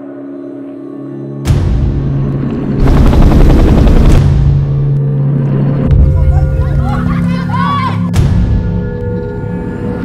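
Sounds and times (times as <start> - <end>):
helicopter rotor chop: 2.8 - 4.3.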